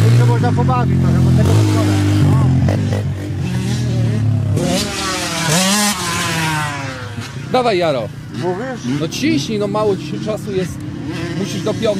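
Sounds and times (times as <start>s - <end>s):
quad engine idling and revving: 0.0s - 11.9s.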